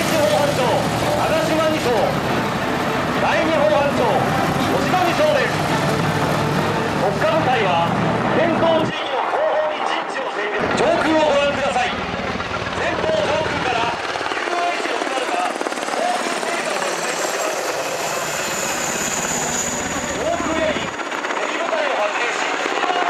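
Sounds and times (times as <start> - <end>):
helicopter rotor beat: 0.0 - 23.0.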